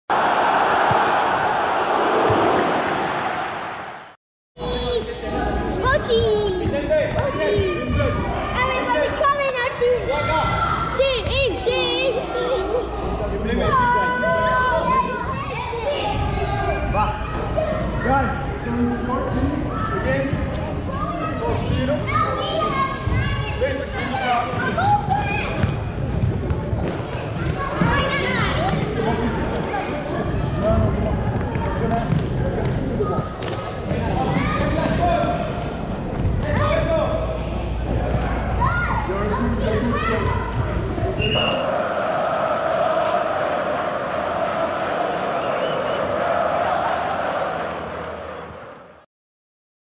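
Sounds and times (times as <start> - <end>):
loud wash of noise: 0.2 - 4.2.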